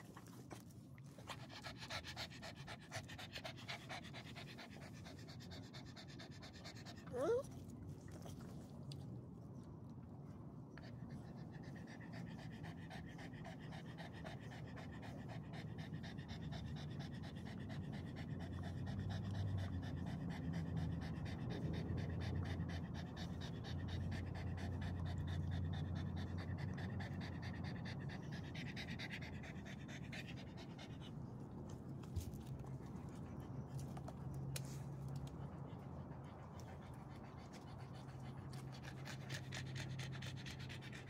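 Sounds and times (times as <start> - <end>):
dog panting rapidly: 0.0 - 7.4, 10.8 - 41.0.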